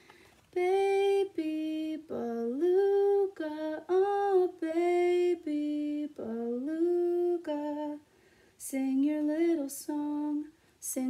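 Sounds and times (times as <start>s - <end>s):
woman singing unaccompanied: 0.4s - 11.0s.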